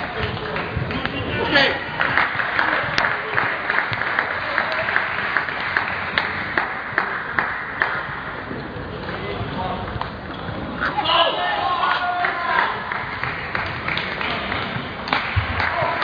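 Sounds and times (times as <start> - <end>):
crowd chatter in sports hall: 0.0 - 16.0.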